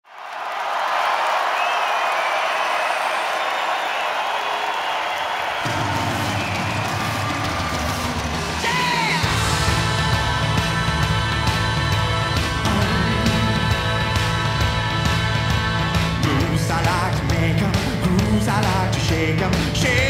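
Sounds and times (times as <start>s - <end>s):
crowd cheering and whistling: 0.0s - 17.3s
rock band playing: 5.6s - 20.0s.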